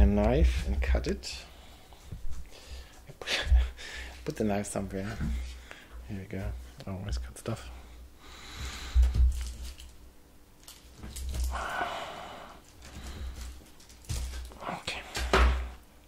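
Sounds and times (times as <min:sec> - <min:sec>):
paper wrappers crinkling: 0:12.6 - 0:15.1.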